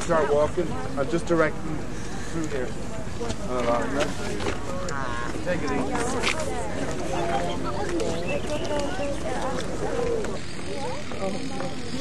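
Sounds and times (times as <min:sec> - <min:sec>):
people talking: 0:02.5 - 0:12.0.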